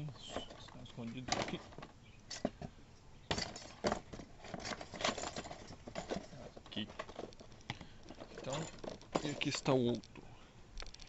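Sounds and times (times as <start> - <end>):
metal engine parts clinking: 3.3 - 9.9.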